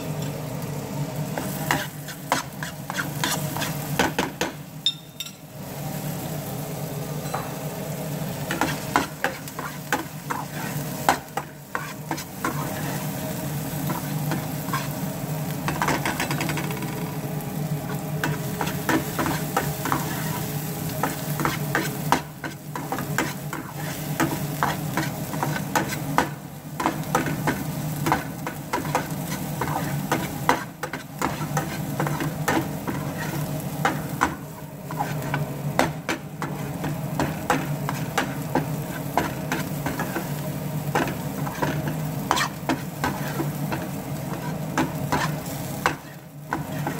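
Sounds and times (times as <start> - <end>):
garlic sizzling in a pan: 0.0 - 46.9
metal spatula scraping a pan: 1.7 - 3.8, 8.5 - 13.1, 31.0 - 34.0, 34.9 - 35.4, 41.0 - 45.5.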